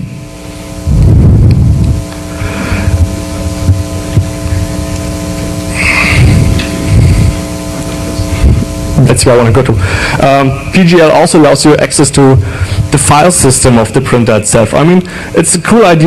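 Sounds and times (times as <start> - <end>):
low rumbles: 0.0 - 11.4, 12.4 - 13.4
electrical mains hum: 0.0 - 16.0.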